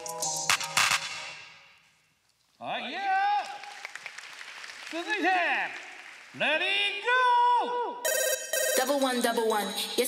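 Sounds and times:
people clapping: 3.2s - 6.8s.

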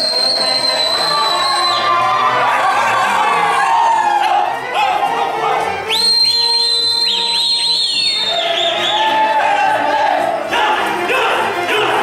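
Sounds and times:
shrill high whistle: 0.0s - 2.2s, 5.8s - 9.4s
folk dance music: 0.0s - 12.0s.

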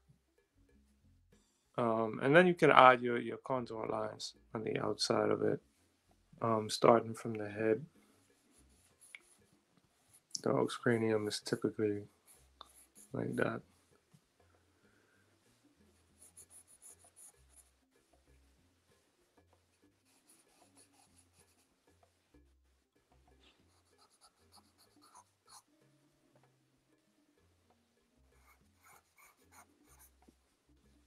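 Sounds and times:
pencil scratching on paper: 8.3s - 10.3s, 12.2s - 13.3s, 16.2s - 17.8s, 20.0s - 21.7s, 23.6s - 25.7s, 28.4s - 30.2s.

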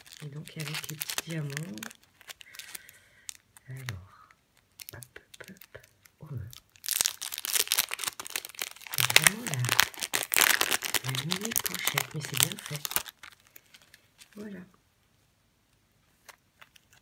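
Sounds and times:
plastic bags crinkling: 0.0s - 3.6s, 4.6s - 14.3s.

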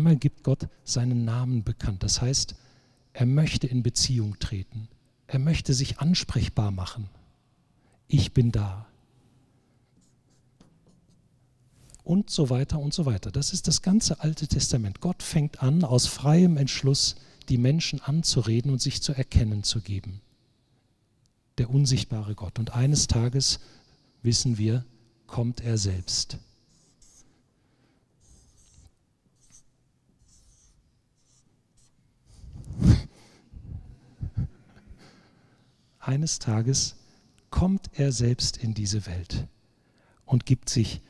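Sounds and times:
marker scratching on paper: 26.7s - 27.4s, 28.2s - 32.0s.

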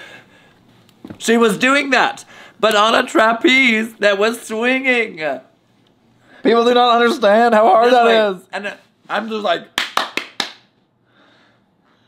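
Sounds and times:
hand claps: 9.8s - 10.8s.

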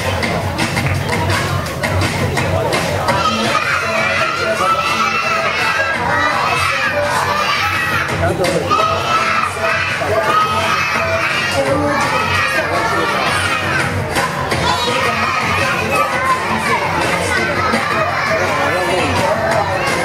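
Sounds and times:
children shouting and cheering: 0.0s - 20.0s.

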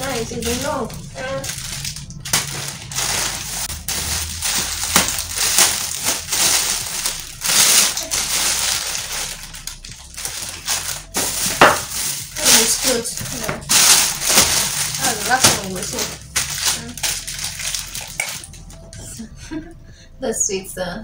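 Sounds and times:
plastic bags crinkling: 0.0s - 19.2s
low steady hum: 0.0s - 21.0s.

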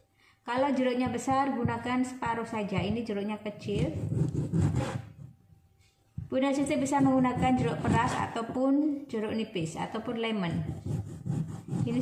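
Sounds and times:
knife sawing through fruit: 4.0s - 5.2s, 10.8s - 12.0s.

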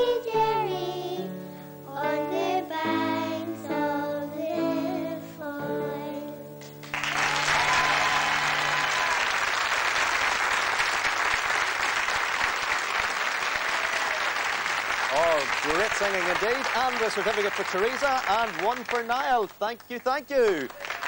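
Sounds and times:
audience applause: 6.8s - 21.0s
man speaking: 15.1s - 20.8s.

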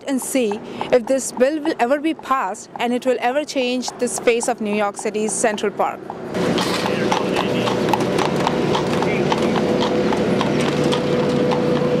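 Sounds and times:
horse hooves on asphalt: 0.0s - 12.0s
steady hum: 0.0s - 12.0s.

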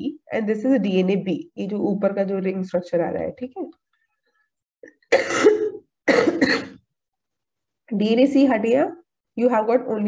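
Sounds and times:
woman coughing: 5.1s - 6.8s.

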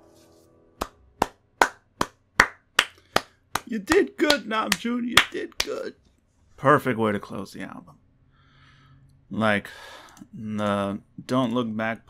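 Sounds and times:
person clapping slowly: 0.8s - 5.8s.

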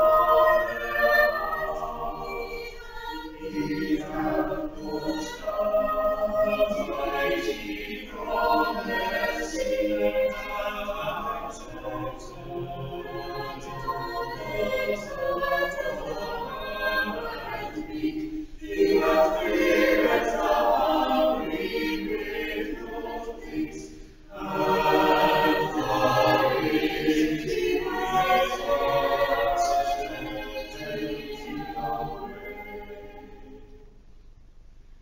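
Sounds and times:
church choir singing: 0.0s - 33.9s.

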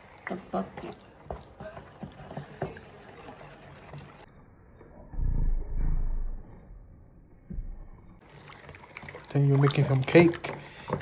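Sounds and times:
loud low rumbling: 5.0s - 6.8s.

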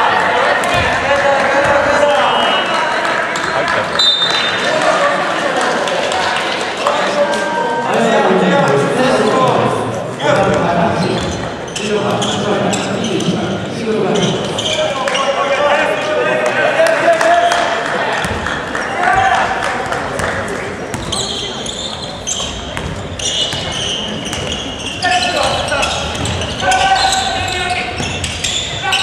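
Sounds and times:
people calling out in a hall: 0.0s - 29.0s
basketball bouncing on wooden court: 0.6s - 1.0s, 20.2s - 24.7s, 25.5s - 26.7s, 27.9s - 28.8s
shoe squeaks: 11.0s - 13.4s, 14.1s - 15.4s, 20.9s - 29.0s.

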